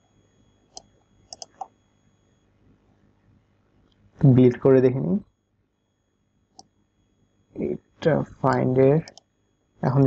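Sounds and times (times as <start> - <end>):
computer mouse click: 0.7 - 1.7, 8.5 - 9.3
person speaking: 4.2 - 5.2, 7.6 - 9.2.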